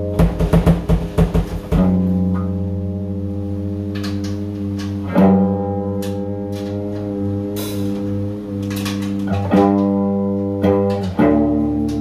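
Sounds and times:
electric guitar chord ringing: 1.8 - 12.0.

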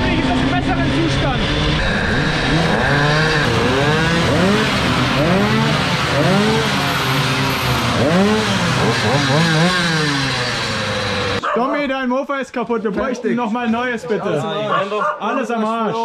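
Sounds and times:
moped engines revving: 0.0 - 11.5.

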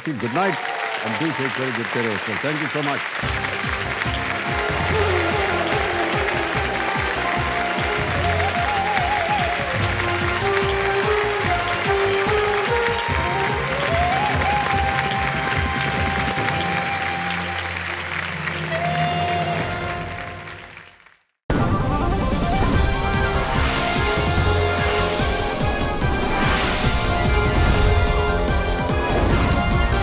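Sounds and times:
audience applauding: 0.0 - 21.3.

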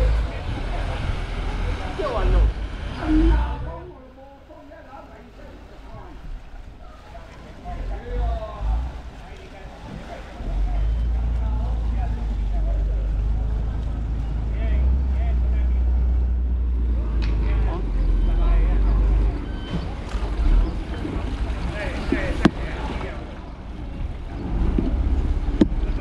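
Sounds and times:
boat engine rumbling: 0.0 - 26.0.

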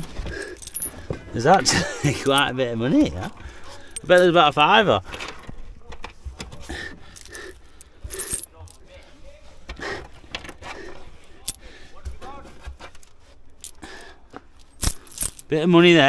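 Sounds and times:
coins clinking: 0.0 - 1.0, 3.9 - 4.7, 7.1 - 8.9, 11.3 - 11.6, 13.5 - 15.6.

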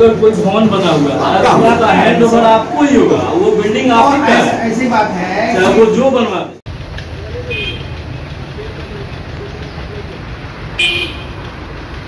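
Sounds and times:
low outdoor rumble: 6.7 - 12.0
high-pitched vehicle horn toot: 7.5 - 8.0, 10.8 - 11.4.

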